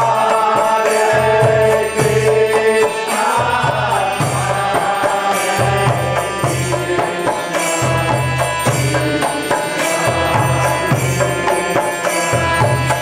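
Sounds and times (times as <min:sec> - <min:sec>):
voices chanting sung notes: 0:00.0 - 0:13.0
hand drum beat: 0:01.2 - 0:13.0.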